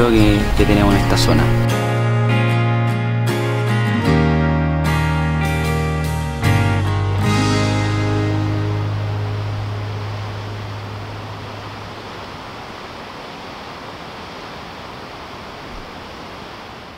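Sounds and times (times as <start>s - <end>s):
ocean surf: 0.0s - 2.6s, 7.2s - 16.9s
acoustic guitar chord ringing: 0.3s - 12.0s.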